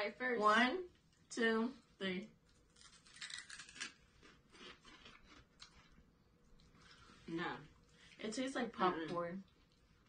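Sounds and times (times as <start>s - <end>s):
people crunching snacks: 2.5s - 6.0s.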